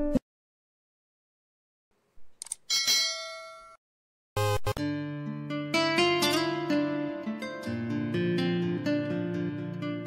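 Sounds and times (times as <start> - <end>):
bell-like chime ding: 2.7 - 3.8.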